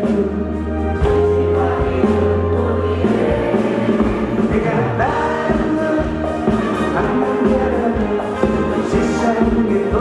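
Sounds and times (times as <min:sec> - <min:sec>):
deep bass line: 0:00.0 - 0:10.0
keyboards: 0:00.0 - 0:10.0
man singing lead vocal: 0:00.0 - 0:10.0
backing singers: 0:01.0 - 0:10.0.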